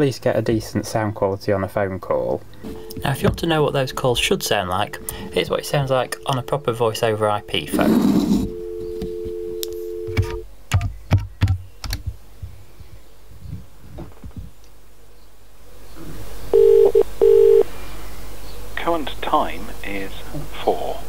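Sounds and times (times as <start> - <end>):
ringing tone pulses: 2.7 - 10.4
phone dial tone: 4.3 - 10.4, 16.6 - 17.7.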